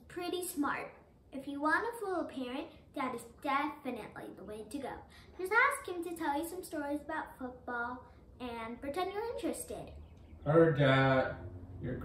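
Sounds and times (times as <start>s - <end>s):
child speaking: 0.0s - 10.0s.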